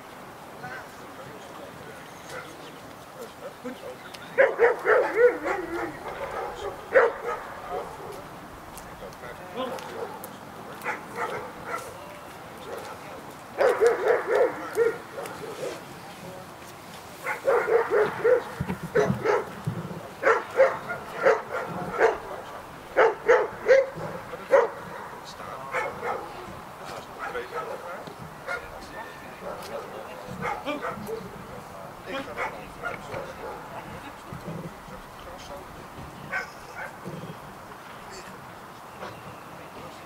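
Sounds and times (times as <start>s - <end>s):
dog barking: 2.3s - 2.6s, 4.4s - 8.3s, 9.6s - 12.0s, 13.6s - 15.8s, 17.2s - 19.6s, 20.2s - 26.5s, 27.2s - 31.2s, 32.1s - 33.8s, 36.3s - 37.0s.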